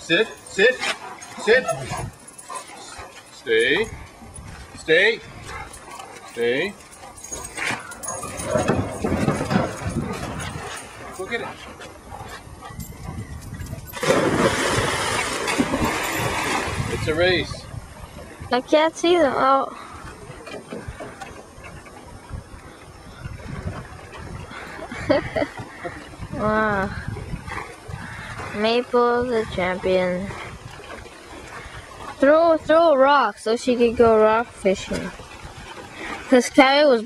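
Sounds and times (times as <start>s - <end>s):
wind rumbling on microphone: 1.7s - 2.3s, 3.8s - 5.8s, 7.3s - 33.2s, 33.8s - 36.5s
dog paws thudding: 5.4s - 16.8s.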